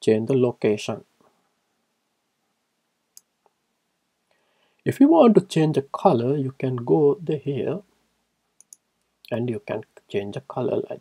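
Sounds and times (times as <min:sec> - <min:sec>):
computer mouse click: 0:08.6 - 0:09.1.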